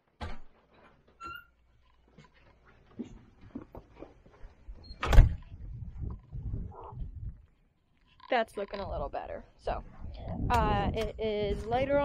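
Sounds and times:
wind rumbling on microphone: 4.7s - 7.6s, 8.6s - 12.0s.

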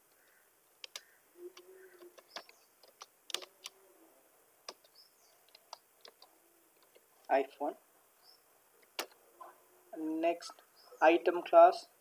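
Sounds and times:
computer keyboard typing: 2.0s - 3.8s, 4.7s - 7.0s.

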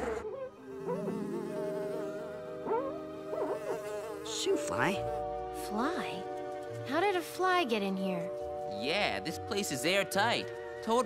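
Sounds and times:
cartoon fly buzzing: 0.0s - 5.5s.

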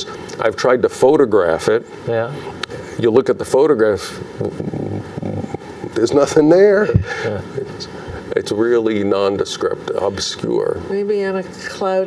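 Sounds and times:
studio room tone: 0.0s - 12.0s.

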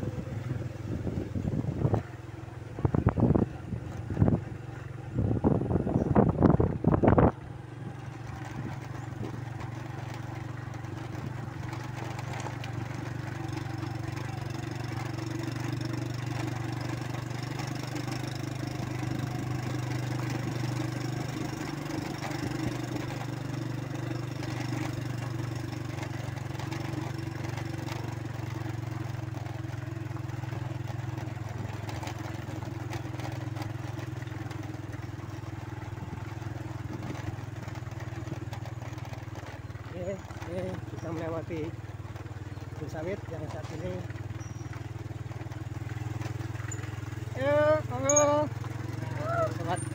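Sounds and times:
motorcycle engine cruising: 0.0s - 49.9s
road noise: 0.0s - 49.9s.

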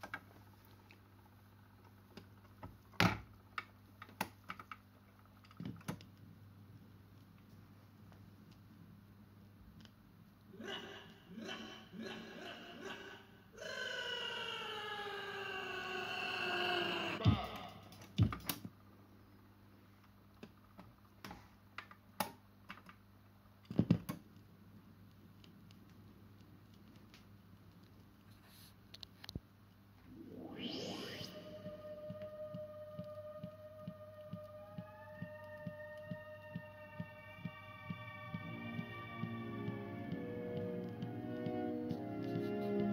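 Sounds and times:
tone sliding down in pitch: 30.0s - 42.9s.

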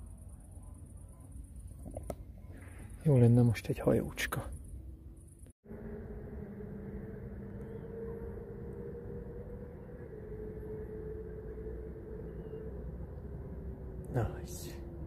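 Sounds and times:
low engine drone: 0.0s - 15.0s.

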